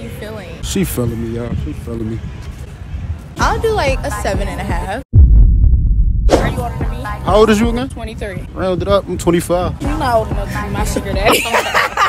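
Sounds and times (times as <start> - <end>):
deep bass boom: 5.1 - 7.8.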